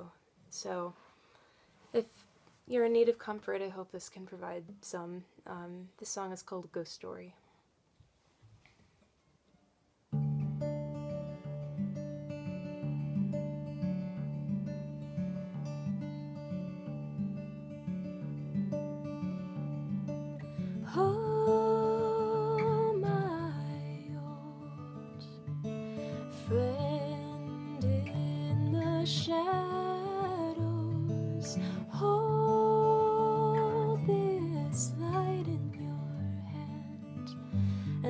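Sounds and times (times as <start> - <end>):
acoustic guitar plucking: 10.1 - 38.0.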